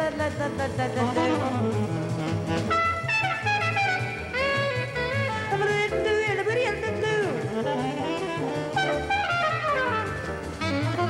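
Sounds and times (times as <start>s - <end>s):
upright bass walking: 0.0s - 11.0s
tenor saxophone lead: 1.0s - 11.0s.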